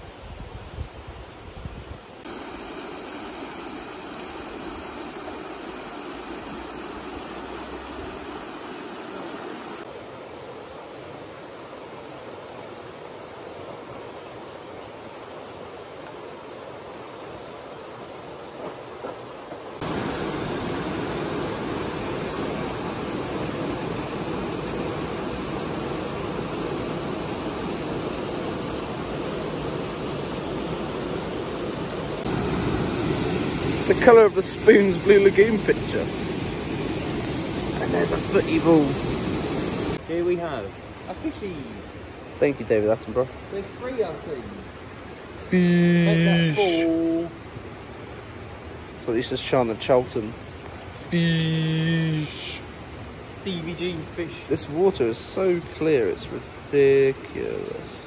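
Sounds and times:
river rushing over stones: 2.2s - 58.0s.

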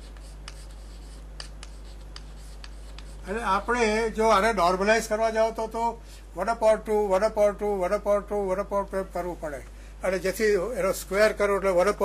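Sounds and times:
chalk tapping on board: 0.0s - 3.4s
chalk scratching on chalkboard: 0.0s - 4.0s
low electrical hum: 0.0s - 12.0s.

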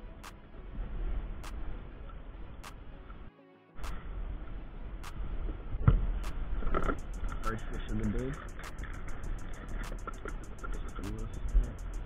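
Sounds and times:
wind rumble on microphone: 3.9s - 12.0s.

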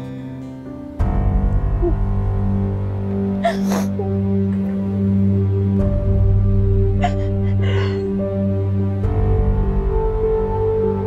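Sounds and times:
low drone music: 0.0s - 11.0s
woman sobbing gasp: 3.4s - 4.2s, 7.0s - 8.2s.

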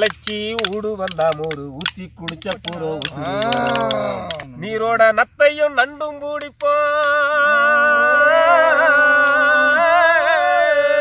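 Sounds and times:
snail shells clicking: 0.0s - 4.5s
person calling out: 2.7s - 4.5s.

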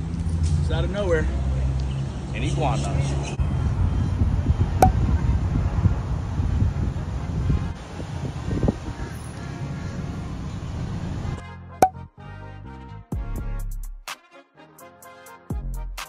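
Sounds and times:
street traffic: 0.0s - 11.4s
wind buffeting microphone: 3.4s - 11.4s
background music: 11.4s - 16.0s.

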